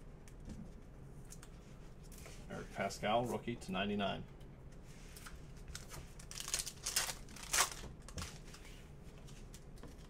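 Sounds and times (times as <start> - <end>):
foil wrapper crinkling and tearing: 5.7 - 8.5.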